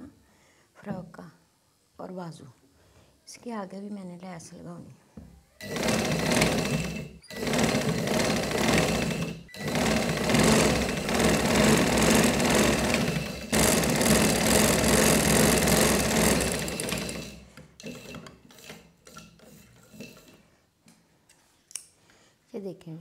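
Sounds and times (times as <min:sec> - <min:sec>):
sewing machine running: 0:05.6 - 0:18.8.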